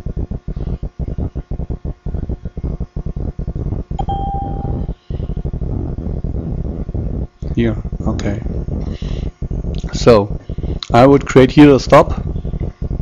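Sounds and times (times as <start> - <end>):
choppy low rumble: 0.0 - 13.0
short electronic beep: 4.0 - 4.9.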